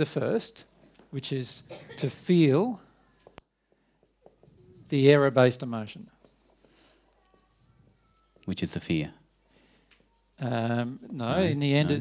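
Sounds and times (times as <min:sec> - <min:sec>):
marker writing on whiteboard: 0:02.1 - 0:12.0.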